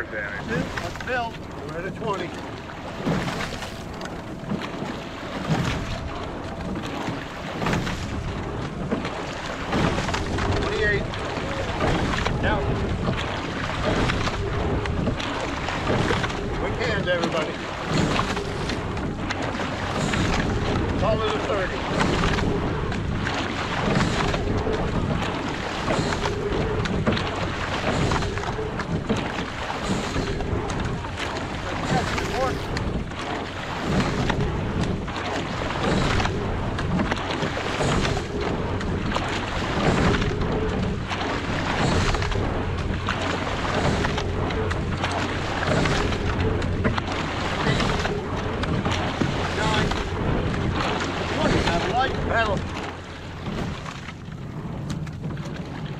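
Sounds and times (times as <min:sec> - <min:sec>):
oar blades driving through water: 0:00.0 - 0:55.9
water rushing along hull: 0:00.0 - 0:55.9
wind on microphone: 0:00.0 - 0:55.9.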